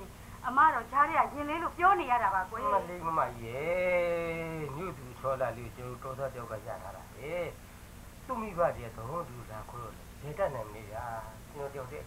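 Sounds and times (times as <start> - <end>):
people talking: 0.0 - 7.6, 8.3 - 12.0.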